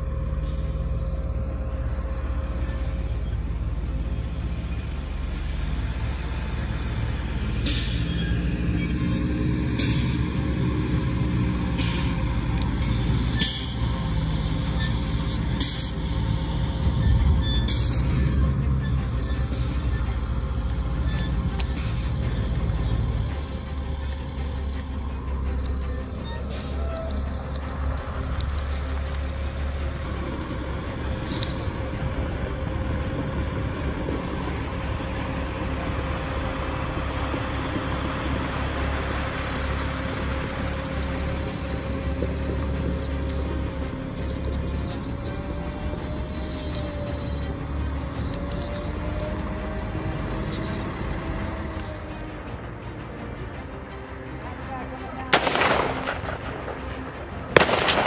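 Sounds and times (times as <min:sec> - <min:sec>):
armored vehicle engine rumble: 0:00.0 - 0:58.0
engine whine: 0:00.0 - 0:58.0.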